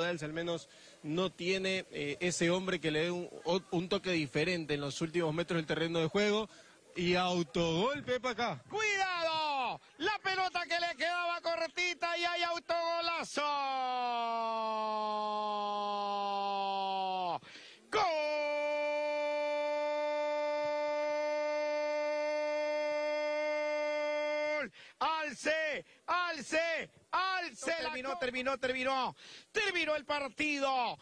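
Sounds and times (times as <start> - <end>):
football commentator shouting: 7.0 - 31.0.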